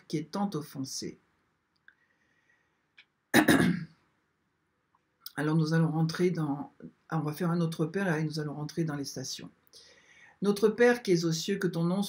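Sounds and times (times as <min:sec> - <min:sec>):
woman coughing: 0:03.4 - 0:03.8.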